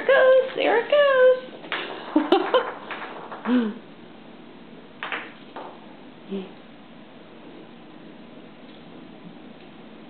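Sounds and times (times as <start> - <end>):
woman speaking: 0.0 - 1.5, 6.3 - 6.6.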